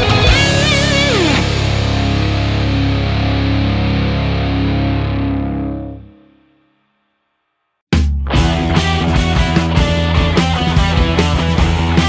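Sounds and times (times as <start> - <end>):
rock band final chord: 0.0 - 6.4, 8.3 - 12.0
distorted electric guitar lead: 0.0 - 6.6, 8.2 - 12.0.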